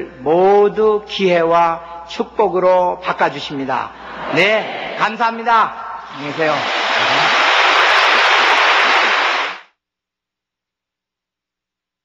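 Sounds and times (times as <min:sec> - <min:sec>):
audience applauding: 0:06.1 - 0:09.6.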